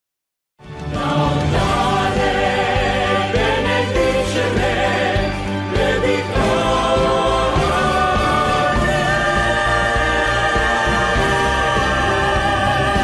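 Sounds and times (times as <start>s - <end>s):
choir singing held chords: 0.7s - 13.0s.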